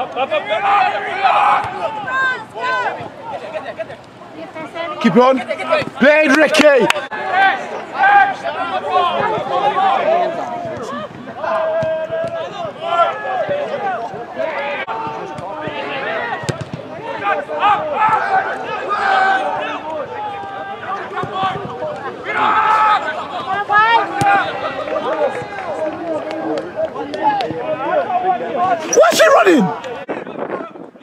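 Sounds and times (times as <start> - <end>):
spectators talking: 0.0 - 30.9
players calling out: 28.7 - 29.8.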